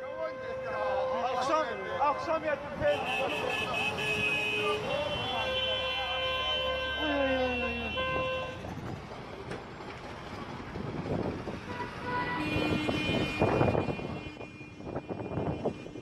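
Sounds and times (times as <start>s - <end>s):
street traffic: 0.0s - 16.0s
vehicle horn blast: 0.2s - 8.6s, 11.7s - 16.0s.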